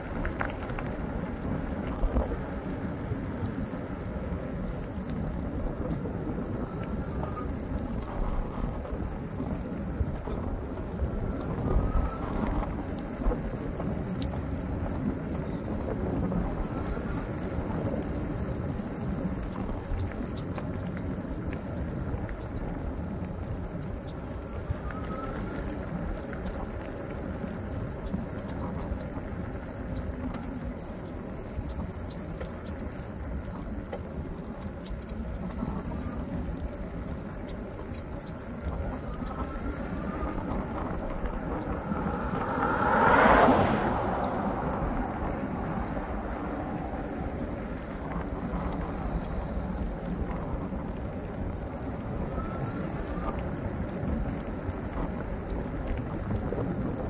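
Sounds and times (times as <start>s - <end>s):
tyre noise on asphalt: 0.0s - 57.0s
wind buffeting microphone: 0.0s - 57.0s.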